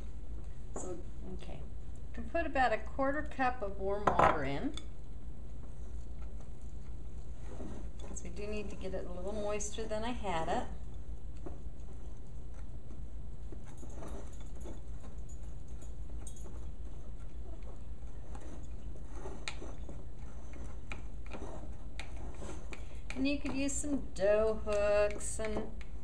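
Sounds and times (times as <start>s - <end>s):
steady low hum: 0.0s - 26.0s
utensil scraping glass bowl: 7.2s - 10.5s, 16.2s - 25.4s.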